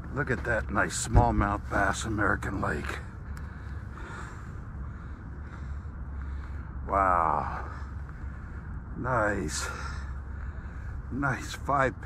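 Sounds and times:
faint outdoor hiss: 0.0s - 12.0s
steady low rumble: 0.0s - 12.0s.

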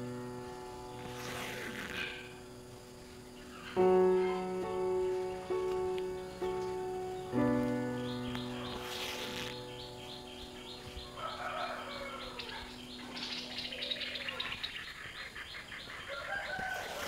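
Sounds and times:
held piano chord: 0.0s - 14.5s
birds chirping: 0.0s - 17.0s
rooster calling: 10.8s - 14.6s, 15.9s - 17.0s.

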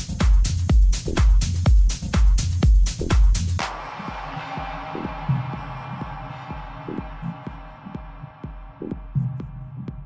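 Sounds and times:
kick drum thudding: 0.0s - 10.0s.

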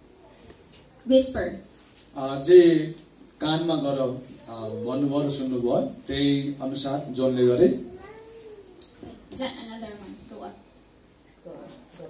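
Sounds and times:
person speaking: 3.7s - 8.4s.

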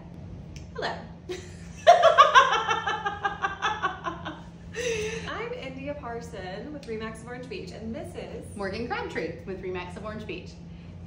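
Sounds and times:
women laughing: 1.3s - 5.3s.

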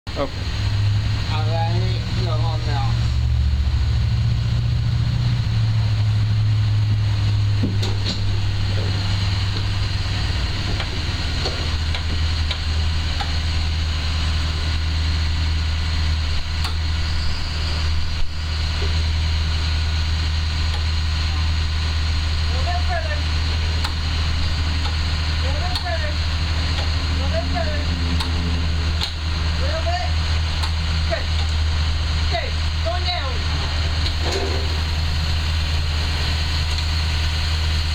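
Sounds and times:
bus engine humming: 0.0s - 37.9s.

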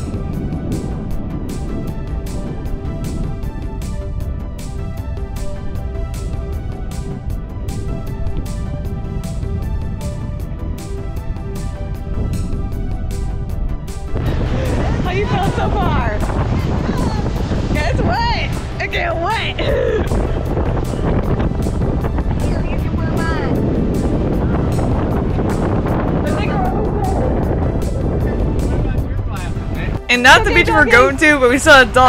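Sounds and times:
background music: 0.0s - 32.0s
wind buffeting microphone: 0.0s - 32.0s
rushing water: 13.2s - 32.0s.

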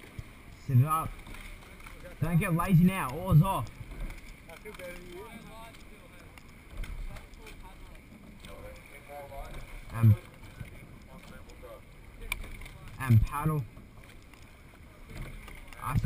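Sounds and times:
water lapping along a boat hull: 0.0s - 16.0s.

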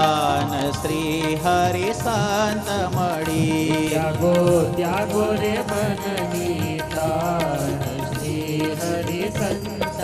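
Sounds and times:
harmonium: 0.0s - 10.0s
tabla drums: 0.0s - 10.0s.

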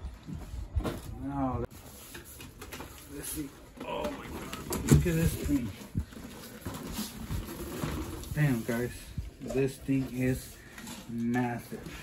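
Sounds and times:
cardboard scraping and rustling: 1.7s - 12.0s.

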